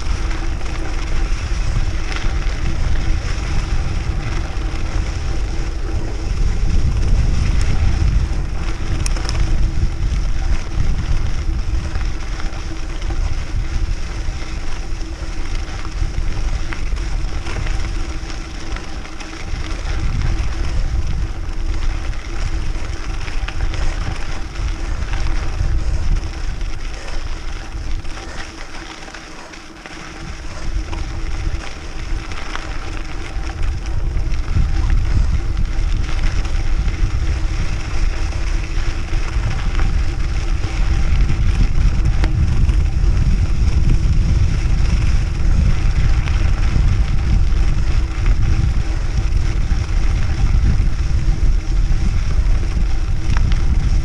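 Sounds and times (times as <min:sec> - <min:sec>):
bike tyres rolling on dirt: 0:00.0 - 0:54.0
wind rumble on microphone: 0:00.0 - 0:54.0.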